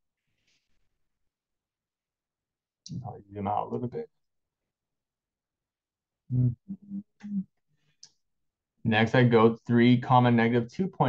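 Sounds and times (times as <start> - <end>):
man speaking: 2.9 - 4.1, 6.3 - 7.5, 8.9 - 11.0.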